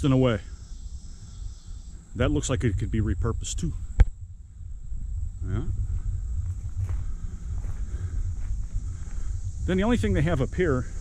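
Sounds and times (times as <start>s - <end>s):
high insect drone: 0.0s - 11.0s
low rumble on microphone: 1.7s - 11.0s
soft footsteps: 5.8s - 9.3s.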